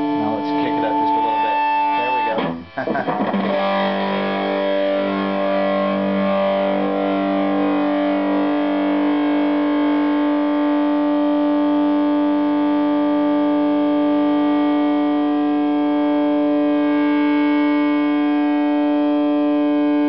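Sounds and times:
electric guitar feedback tone: 0:00.0 - 0:20.0.

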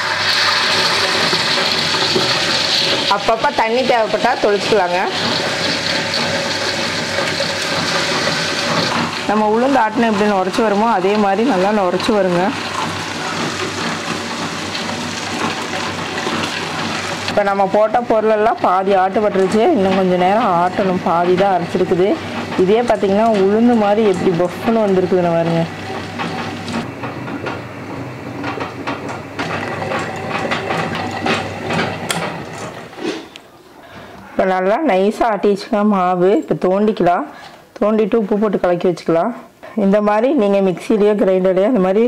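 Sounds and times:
wet grinder motor hum: 0:00.0 - 0:33.1.

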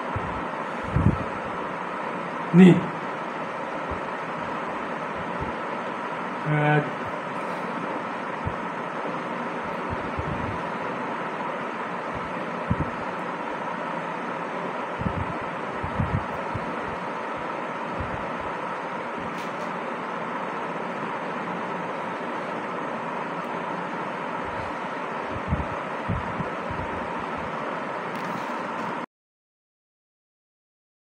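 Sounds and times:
rushing background noise: 0:00.0 - 0:29.0
faint hum: 0:00.0 - 0:29.1.

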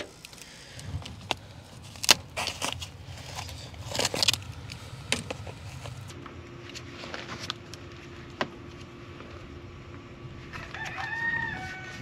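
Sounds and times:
low steady hum: 0:00.0 - 0:12.0
rustling pipe insulation: 0:00.0 - 0:12.0.

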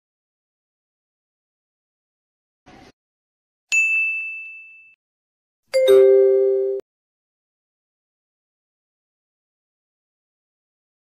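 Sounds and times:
bright high bell ding: 0:03.7 - 0:05.0, 0:05.8 - 0:06.8
lower two-note chime: 0:05.8 - 0:06.8.

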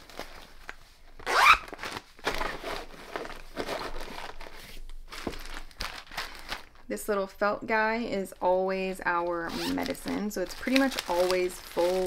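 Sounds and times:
plastic packets crinkling: 0:00.0 - 0:07.0, 0:09.6 - 0:12.0.

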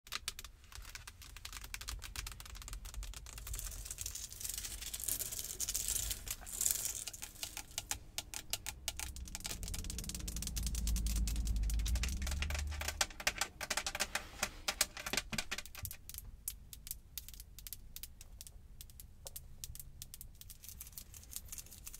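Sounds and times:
nails scratching: 0:00.3 - 0:16.1
low rumble: 0:05.9 - 0:15.6.

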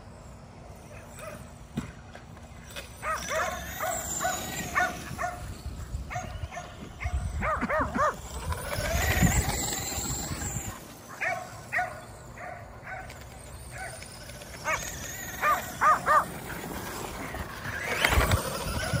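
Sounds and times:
electric motor whine: 0:02.4 - 0:19.0
dogs barking: 0:03.0 - 0:05.5, 0:06.1 - 0:08.3, 0:11.1 - 0:14.0, 0:14.6 - 0:16.4.

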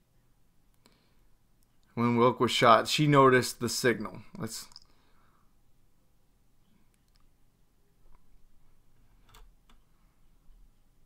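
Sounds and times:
man speaking: 0:01.9 - 0:04.9
computer mouse clicks: 0:09.2 - 0:09.9.

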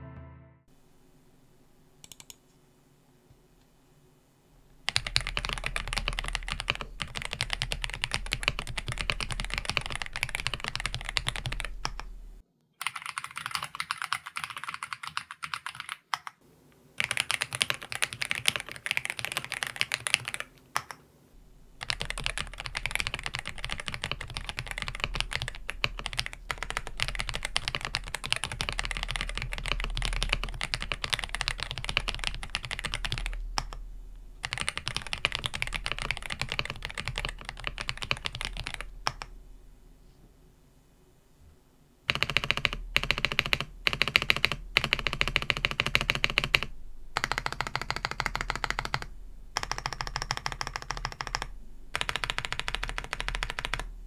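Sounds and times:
fast typing on mechanical keyboard: 0:04.9 - 0:12.1, 0:12.8 - 0:16.4, 0:17.0 - 0:21.0, 0:21.8 - 0:33.8, 0:34.4 - 0:39.3, 0:42.1 - 0:53.9.

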